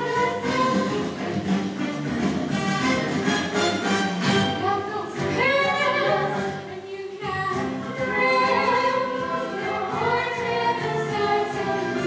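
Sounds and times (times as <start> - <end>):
instrumental accompaniment: 0.0 - 12.0
young women singing together: 4.6 - 12.0.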